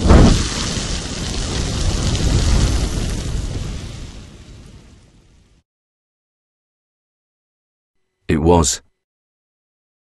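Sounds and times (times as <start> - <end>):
loud boom: 0.0 - 5.4
fire burning: 0.0 - 5.6.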